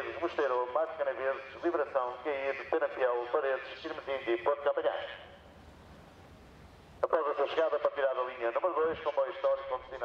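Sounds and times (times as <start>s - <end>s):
echoing voice: 0.0s - 5.4s, 7.0s - 10.0s
low hiss and rumble: 0.0s - 10.0s.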